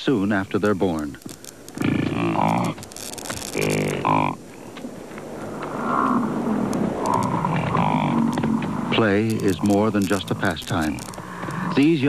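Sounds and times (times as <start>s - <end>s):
bison calling: 0.2s - 12.0s.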